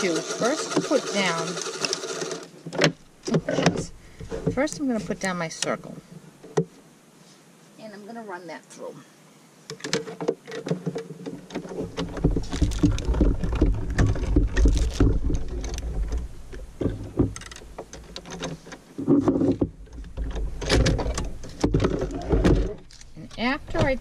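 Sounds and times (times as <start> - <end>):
die-cutting machine cranked: 0.0 - 2.5.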